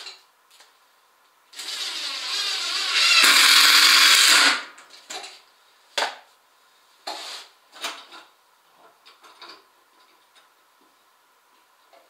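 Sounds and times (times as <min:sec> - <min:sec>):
cordless drill drilling into wood: 0:01.6 - 0:04.7.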